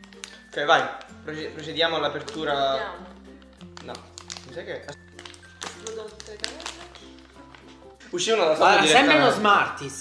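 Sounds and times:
plastic pouch crinkling: 0.0 - 8.1
background music with low notes: 0.0 - 10.0.

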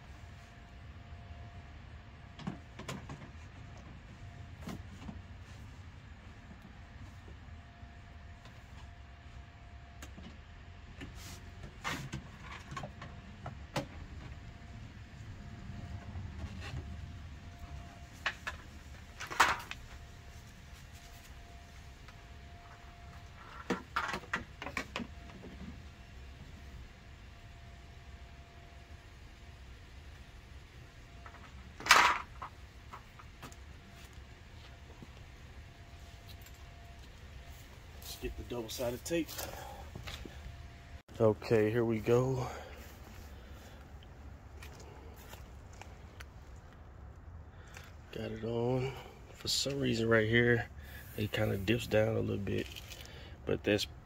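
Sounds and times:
low outdoor rumble: 0.0 - 54.0.

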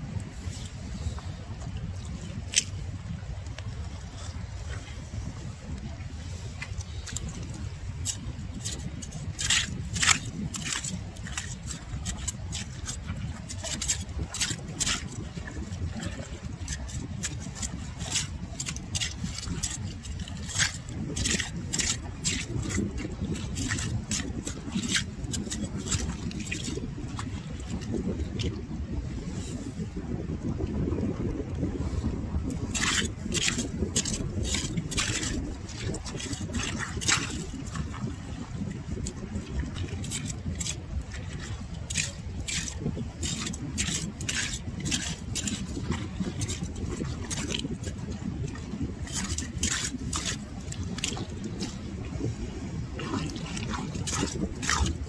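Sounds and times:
rake scraping through shelly mud: 6.6 - 28.6, 32.5 - 51.9, 53.0 - 55.0.

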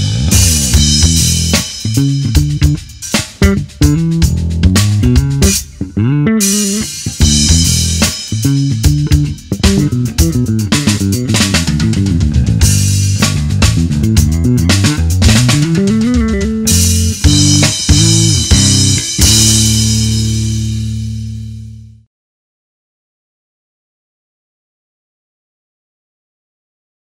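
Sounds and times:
backing track with drums: 0.0 - 21.8
electric bass played fingerstyle: 0.0 - 22.0.

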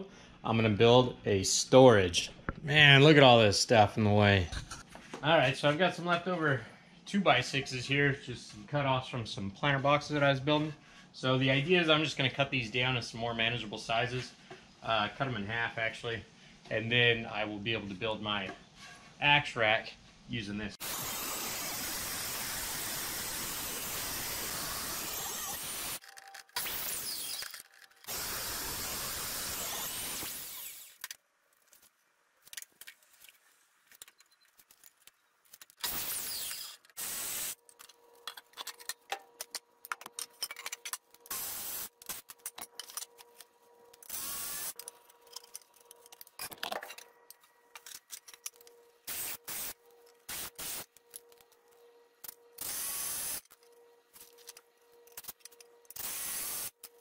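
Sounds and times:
table saw cutting lumber: 20.8 - 26.0, 28.1 - 31.0
cordless drill driving screws: 26.6 - 31.1, 35.8 - 37.6, 44.0 - 44.8.

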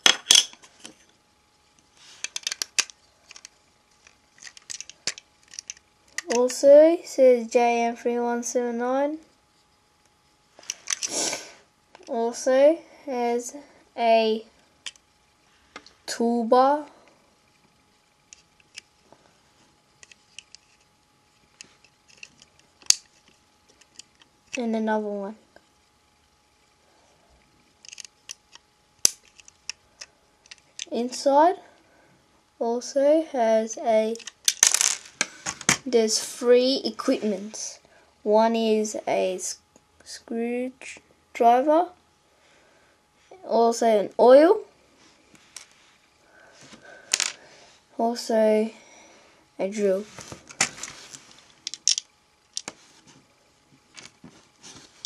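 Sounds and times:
plastic toy clicks and rattles: 2.2 - 6.6, 27.8 - 28.4, 34.1 - 35.1, 51.6 - 52.7.

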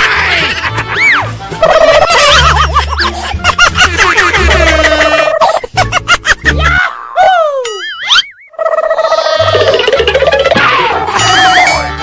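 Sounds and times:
comic warbling gobble sound effect: 1.0 - 2.5, 4.4 - 5.6, 7.8 - 12.0.

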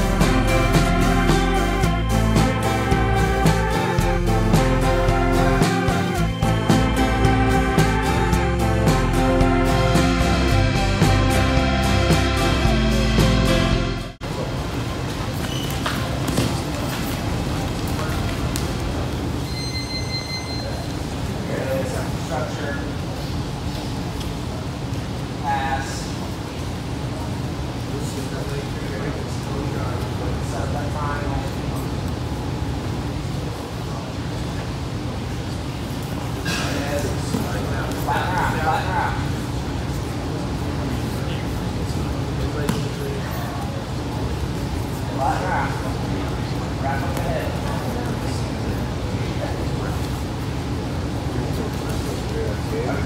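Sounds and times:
high steady tone: 0.0 - 14.2
room noise: 0.0 - 53.0
voices in room: 20.5 - 53.0.

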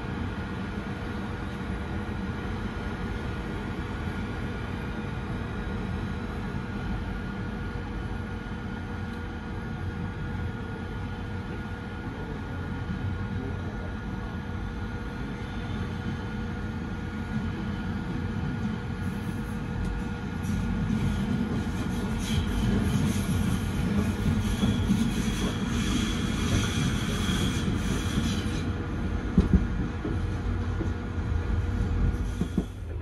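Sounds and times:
train wheels rumbling on rails: 0.0 - 33.0.

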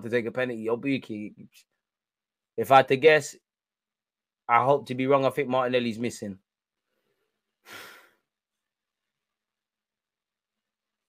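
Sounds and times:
man sighing: 7.7 - 8.2.

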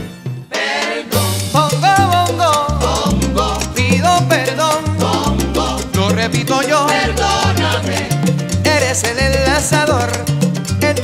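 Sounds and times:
salsa band playing: 0.0 - 11.0.

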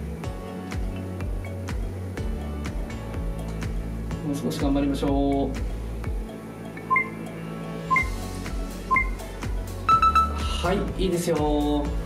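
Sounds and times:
background music: 0.0 - 12.0
countdown timer beeps: 6.1 - 10.7.

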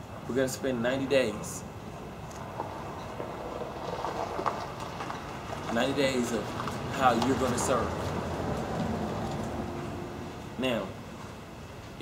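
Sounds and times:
low outdoor background noise: 0.0 - 12.0.

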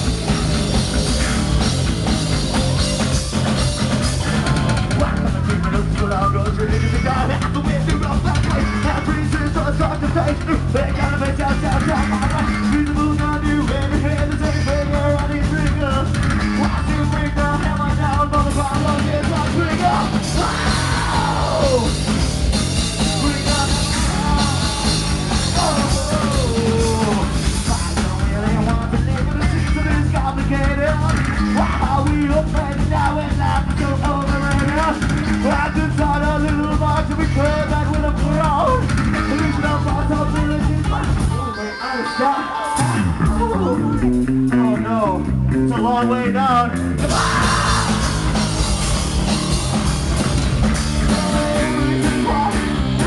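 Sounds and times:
drum kit: 0.0 - 41.6, 42.4 - 53.0
bass guitar: 0.0 - 53.0
distorted electric guitar: 0.0 - 53.0
rock band playing live: 0.0 - 53.0.

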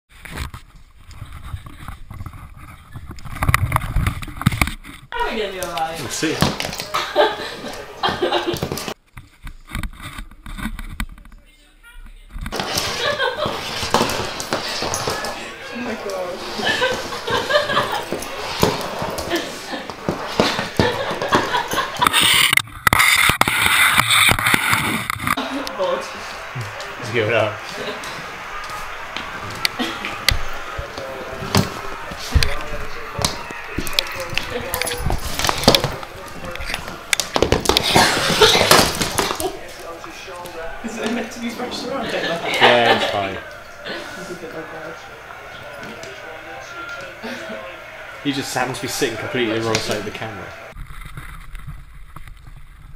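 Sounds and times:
people talking and laughing: 5.1 - 9.0, 12.5 - 22.6, 24.8 - 50.8.

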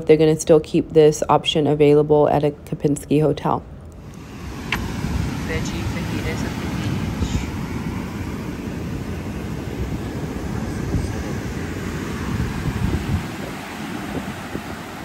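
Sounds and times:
wind buffeting microphone: 4.0 - 15.0.

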